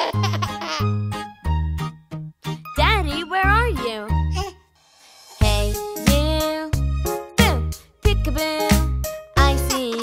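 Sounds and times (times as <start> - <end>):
bouncy children's song music: 0.0 - 10.0.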